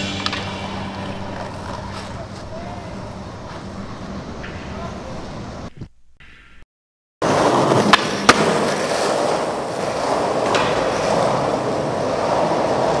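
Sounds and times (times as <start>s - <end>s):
skateboard wheels rolling on concrete: 0.0s - 6.5s, 7.2s - 13.0s
skateboard clacks: 0.2s - 5.4s, 7.2s - 13.0s.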